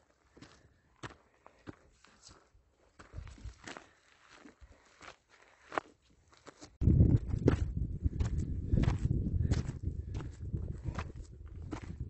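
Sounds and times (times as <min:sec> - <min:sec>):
footsteps crunching on gravel: 0:00.3 - 0:12.0
wind rumble on microphone: 0:06.8 - 0:12.0.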